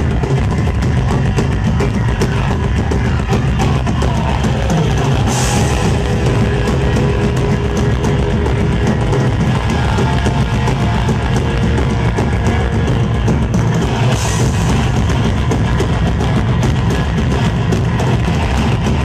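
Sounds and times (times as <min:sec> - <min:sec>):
distorted electric guitars: 0:00.0 - 0:19.0
fast dense drumming: 0:00.0 - 0:19.0.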